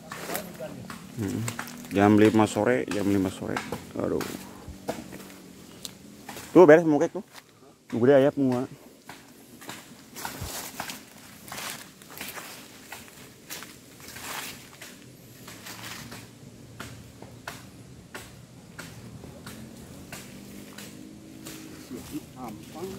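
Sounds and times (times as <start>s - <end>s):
footsteps on dry leaves: 0.0s - 7.6s, 8.9s - 17.1s, 18.5s - 22.9s.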